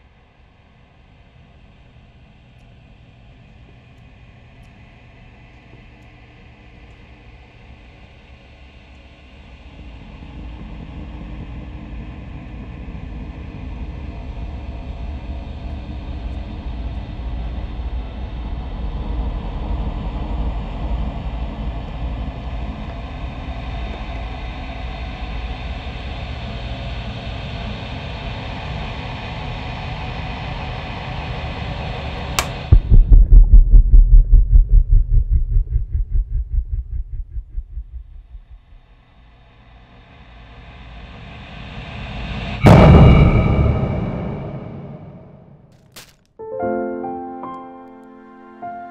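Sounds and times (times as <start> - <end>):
rapid low pulses: 32.4 - 38.9
low rumbling drone: 32.6 - 39.0, 42.6 - 45.7
sharp hit: 42.6 - 46.3.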